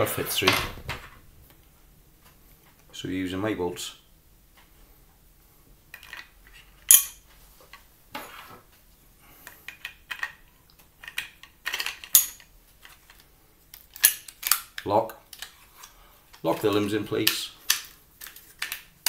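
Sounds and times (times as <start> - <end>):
plastic clicks and rattles: 9.7 - 19.0.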